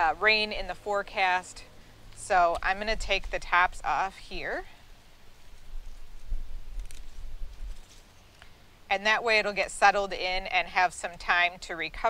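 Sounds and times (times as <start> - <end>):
wind buffeting microphone: 5.6 - 7.8
hand pruners snipping: 6.7 - 7.2.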